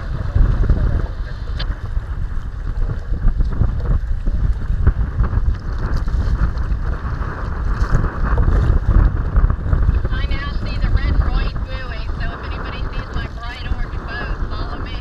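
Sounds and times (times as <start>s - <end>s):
water lapping against hull: 0.0s - 15.0s
wind buffeting microphone: 0.0s - 15.0s.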